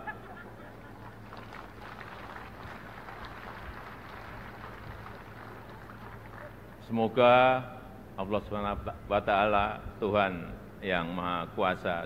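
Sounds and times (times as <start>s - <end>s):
audience applauding: 0.0s - 6.8s
low steady hum: 0.0s - 12.0s.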